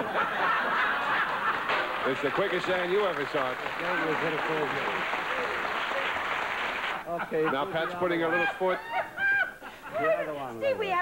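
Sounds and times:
audience laughing: 0:00.0 - 0:03.0, 0:03.8 - 0:10.2.

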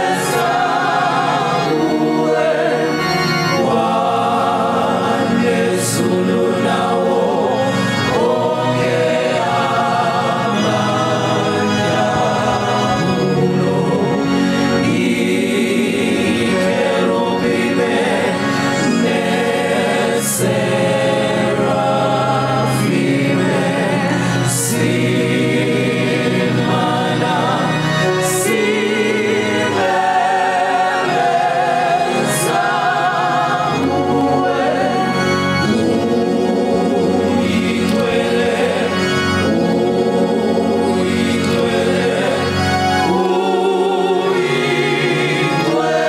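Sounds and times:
gospel choir singing: 0:00.0 - 0:46.0
lead voices singing: 0:00.0 - 0:46.0
low accompaniment: 0:00.0 - 0:46.0.

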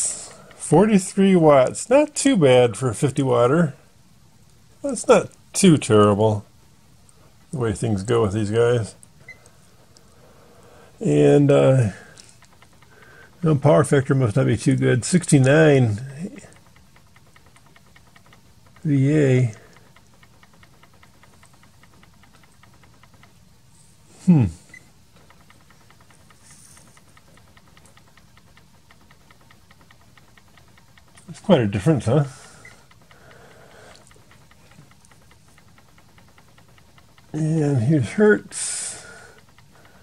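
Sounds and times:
faint rapid ticking: 0:00.0 - 0:40.0
low background hum: 0:00.0 - 0:40.0.

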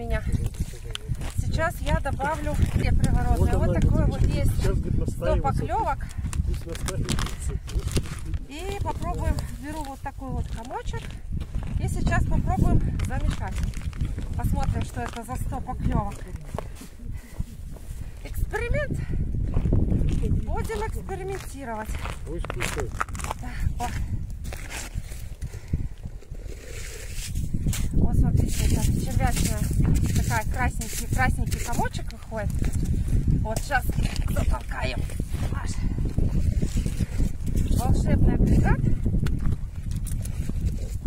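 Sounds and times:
wind on microphone: 0:00.0 - 0:41.0
plastic packet crinkling: 0:13.3 - 0:15.3.

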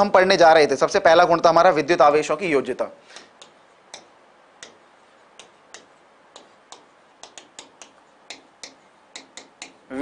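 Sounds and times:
stylus tapping on glass: 0:03.2 - 0:09.8.

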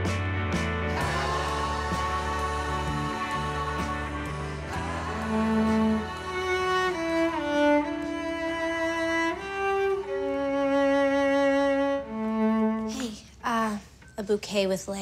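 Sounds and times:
cello bowing a slow melody: 0:01.0 - 0:13.2.

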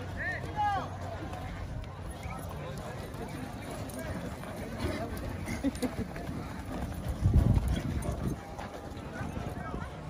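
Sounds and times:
hooves clopping on dirt: 0:00.0 - 0:10.0.

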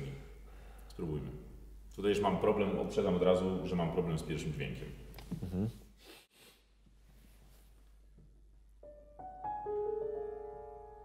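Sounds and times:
grand piano playing: 0:08.8 - 0:11.0.

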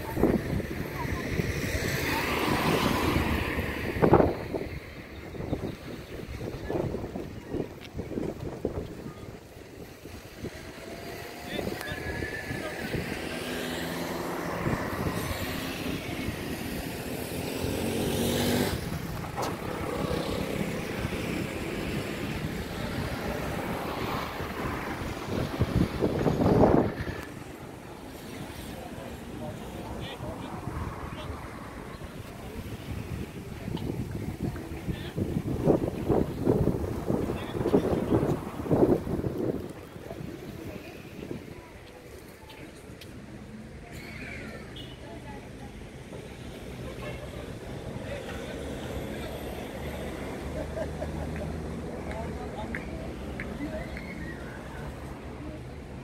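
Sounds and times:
people's voices: 0:00.0 - 0:56.0
vehicles passing on road: 0:00.0 - 0:56.0.

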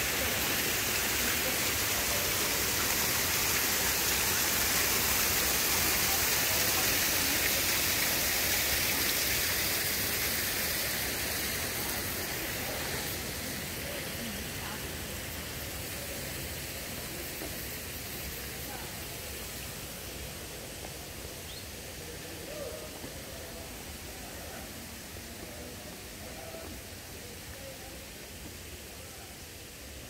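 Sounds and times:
water running down stone wall: 0:00.0 - 0:30.0.

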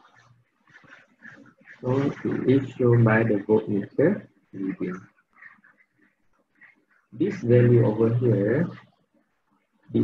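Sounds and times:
faint voices: 0:00.0 - 0:06.0
man speaking: 0:01.7 - 0:05.2, 0:07.1 - 0:08.9.

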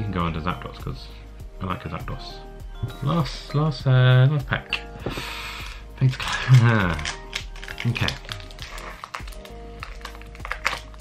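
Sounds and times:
foil wrapper being torn open: 0:06.0 - 0:11.0.

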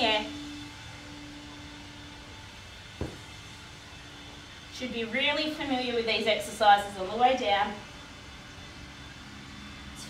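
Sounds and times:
faint continuous hum: 0:00.0 - 0:10.0.

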